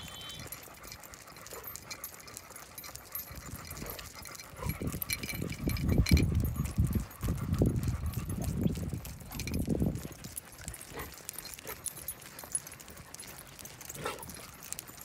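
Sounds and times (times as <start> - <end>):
metal leash clips clicking: 0.0 - 15.0.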